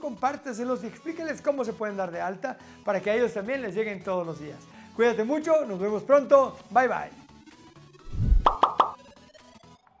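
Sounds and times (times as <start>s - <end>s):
low electronic thump: 8.1s - 9.0s
quick plucky notes: 8.2s - 9.0s.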